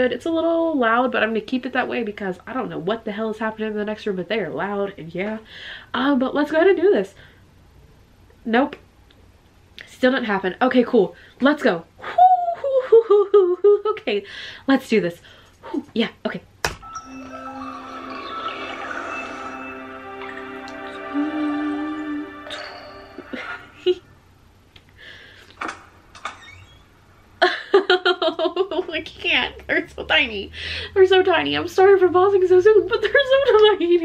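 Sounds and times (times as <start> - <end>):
woman giggling: 12.0 - 14.1, 23.2 - 24.1, 27.4 - 29.0, 32.8 - 34.0
woman laughing: 12.0 - 14.1, 23.2 - 24.1, 27.4 - 29.0, 32.8 - 34.0.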